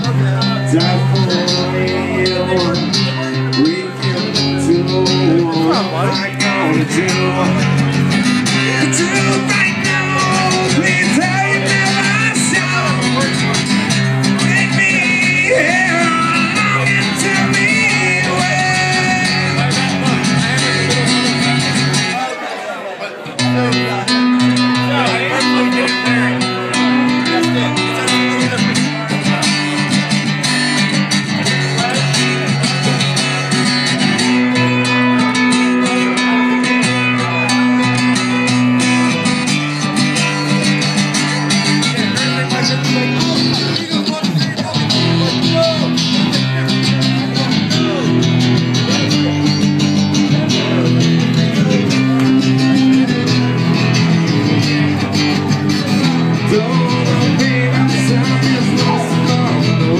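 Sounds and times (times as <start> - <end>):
electric guitar chords: 0.0 - 22.3, 23.4 - 59.9
strummed acoustic guitar: 0.0 - 59.9.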